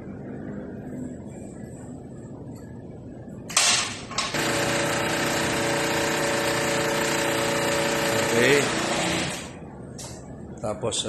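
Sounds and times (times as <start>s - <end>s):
hydraulic power unit humming: 0.1s - 10.6s.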